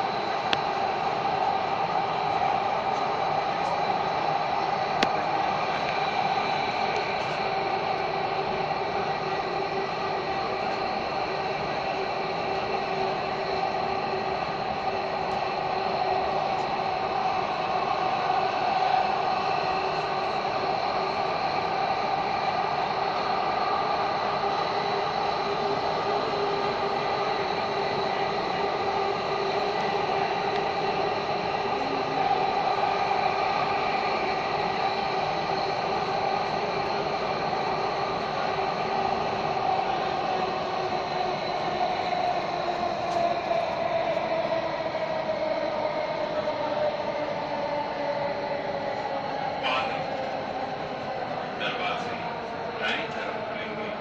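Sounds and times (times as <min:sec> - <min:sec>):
steady whining tones: 0:00.0 - 0:54.0
train wheels on rail: 0:00.0 - 0:54.0.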